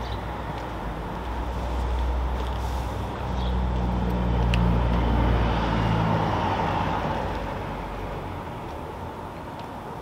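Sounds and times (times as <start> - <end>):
car passing: 0.3 - 9.4.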